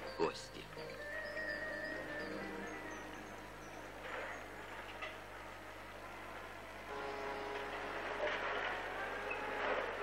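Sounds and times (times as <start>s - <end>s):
loader engine running: 1.2s - 10.0s.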